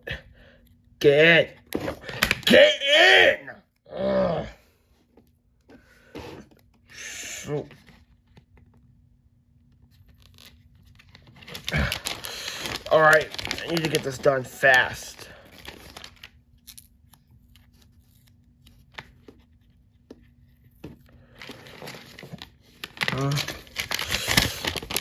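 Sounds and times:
person muttering: 2.9 - 4.6
stickers peeled off paper: 9.8 - 19.4
crinkling paper rustle: 9.8 - 25.0
papery tearing: 9.9 - 19.2, 21.5 - 25.0.

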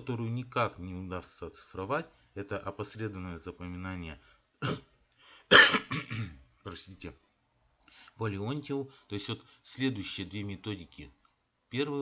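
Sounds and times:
man coughing: 4.6 - 4.9, 5.5 - 6.4.

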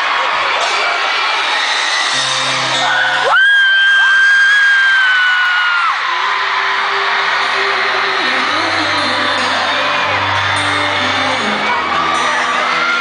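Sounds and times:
crowd screaming: 0.0 - 13.0
loud high-pitched scream: 1.3 - 8.0
band playing intro: 2.0 - 3.5, 6.0 - 13.0.

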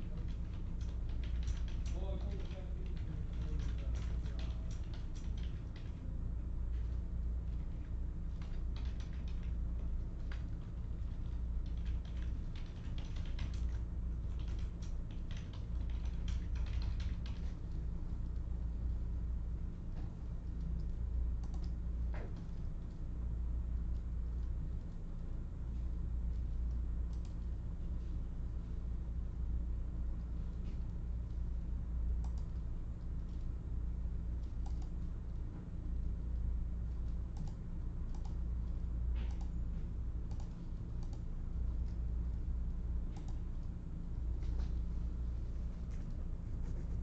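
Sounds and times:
computer keyboard keys clicking: 0.0 - 6.0, 6.7 - 18.5, 20.4 - 22.9, 26.7 - 27.4, 32.2 - 32.6, 34.4 - 35.0, 36.9 - 38.4, 39.2 - 39.5, 40.3 - 42.0, 43.1 - 43.7
steady low hum: 0.0 - 47.0.

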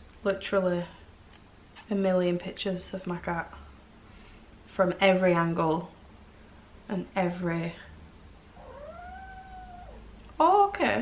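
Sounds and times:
kitten meowing: 8.6 - 10.0.

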